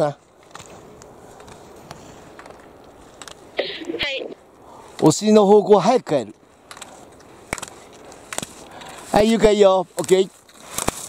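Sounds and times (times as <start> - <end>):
skis scraping on hard snow: 6.9 - 11.0.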